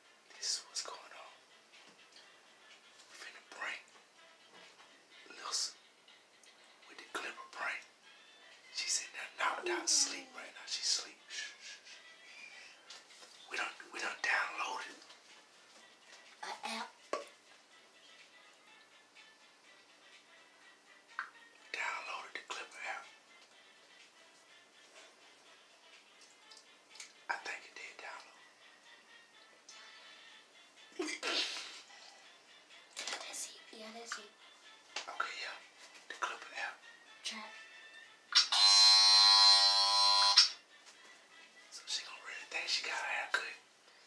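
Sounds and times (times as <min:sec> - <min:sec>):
electric hair clippers buzzing: 0:38.4 - 0:40.6.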